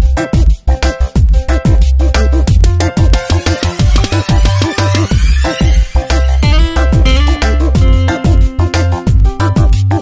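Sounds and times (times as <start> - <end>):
electronic music with bass beat: 0.0 - 10.0.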